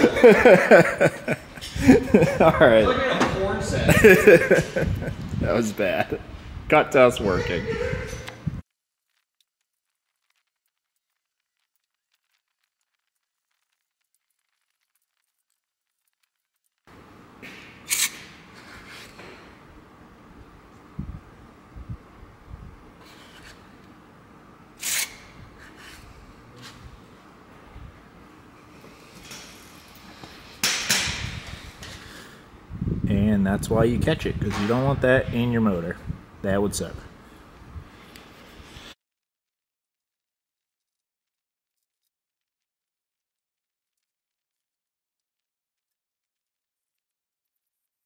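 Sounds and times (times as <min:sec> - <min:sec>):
person laughing: 0:00.0 - 0:03.0, 0:03.8 - 0:05.4, 0:07.2 - 0:08.5.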